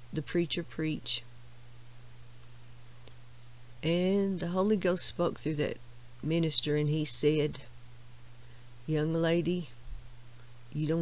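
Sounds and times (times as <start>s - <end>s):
woman speaking: 0.0s - 1.3s, 3.8s - 7.8s, 8.9s - 9.8s, 10.7s - 11.0s
steady low hum: 0.0s - 11.0s.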